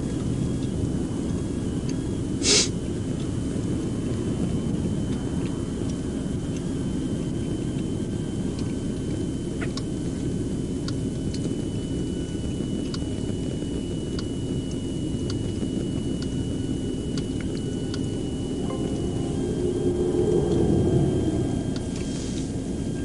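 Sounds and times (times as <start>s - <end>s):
faint high whine: 0.4s - 23.0s
faint ticks: 12.8s - 13.1s
car engine idling: 17.0s - 23.0s.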